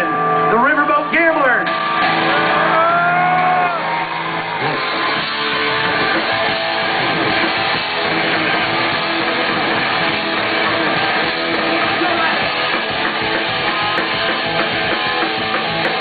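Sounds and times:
electric guitars ringing: 0.0 - 16.0
punk rock band playing: 0.0 - 16.0.

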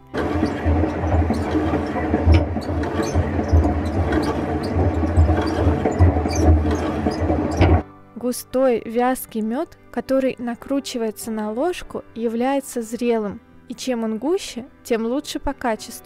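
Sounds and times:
honey extractor rumbling and rattling: 0.0 - 7.8.

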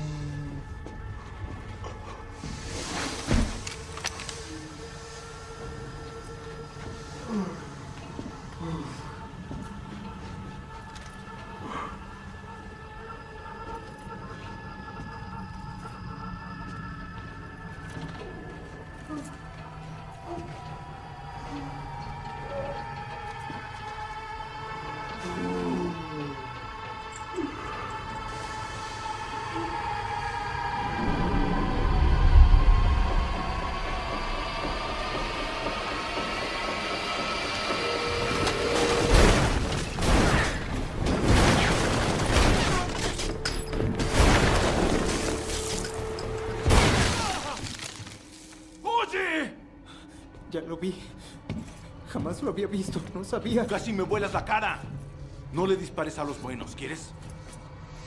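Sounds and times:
ominous held drone tones: 0.0 - 48.9
suspenseful film score: 0.0 - 58.0
deep rumble: 14.1 - 46.9.

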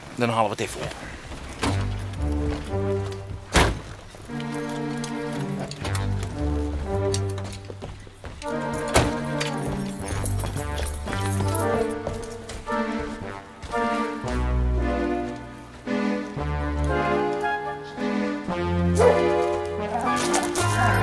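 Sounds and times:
bouncy comedy music: 4.2 - 7.7, 8.4 - 21.0.

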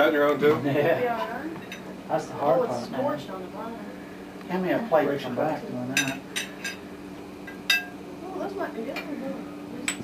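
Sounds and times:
metal utensils clinking on plates: 5.9 - 6.8, 7.5 - 8.0.

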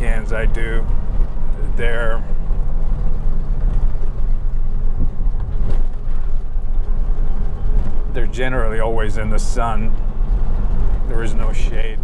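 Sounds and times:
truck engine drone: 0.0 - 12.0
tyres on road: 0.0 - 12.0.

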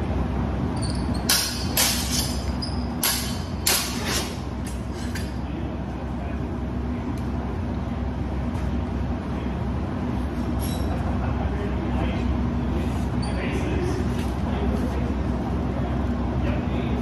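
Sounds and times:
low rumble and hum of hall: 0.0 - 17.0.

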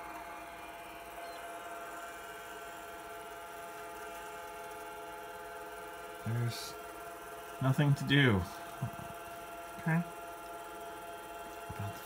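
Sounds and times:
computer humming with whining tones: 0.0 - 12.0.

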